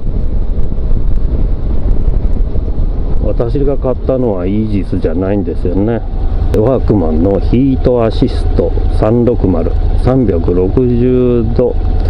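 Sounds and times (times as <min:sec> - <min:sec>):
motorcycle running: 0:00.0 - 0:12.0
wind rumbling on microphone: 0:00.0 - 0:12.0.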